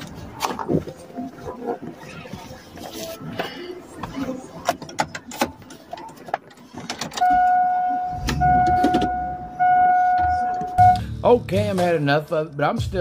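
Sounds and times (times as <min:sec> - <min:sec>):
steady electronic beep tone: 0:07.2 - 0:11.0.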